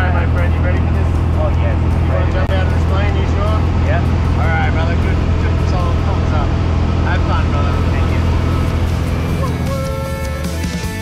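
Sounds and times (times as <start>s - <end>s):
airplane engine and propeller drone: 0.0s - 11.0s
voices calling: 0.0s - 11.0s.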